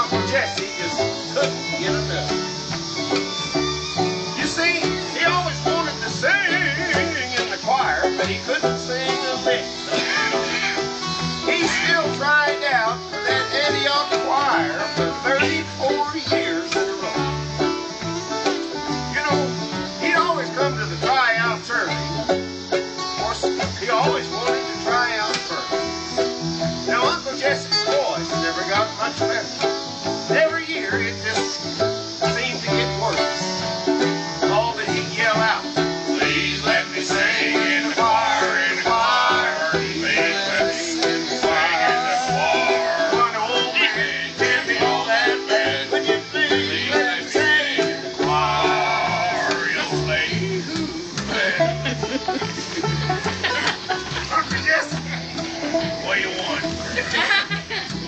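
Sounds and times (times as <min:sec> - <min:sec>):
acoustic guitar strumming: 0:00.0 - 0:58.0
banjo picking: 0:00.0 - 0:58.0
upright bass: 0:00.0 - 0:58.0.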